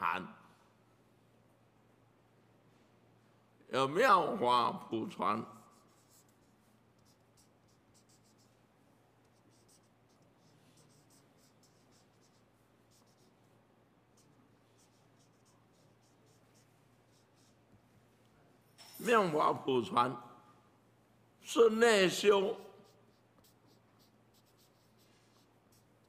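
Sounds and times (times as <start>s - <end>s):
marker scratching on paper: 5.4s - 13.5s, 14.1s - 17.8s, 22.3s - 26.0s.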